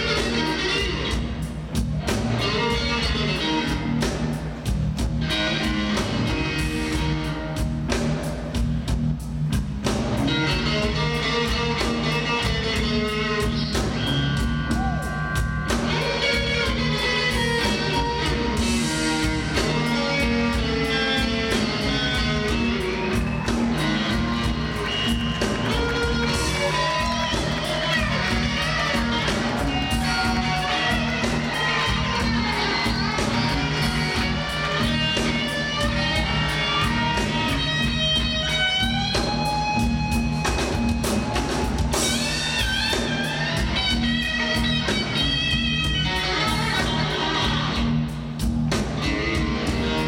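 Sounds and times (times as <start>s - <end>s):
electric blues guitar solo: 0.0s - 4.6s, 10.0s - 48.1s, 48.7s - 50.0s
bass and drums: 0.0s - 50.0s.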